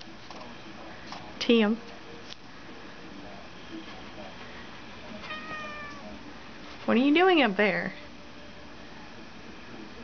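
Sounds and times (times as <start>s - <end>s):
kitten meowing: 5.2s - 6.1s.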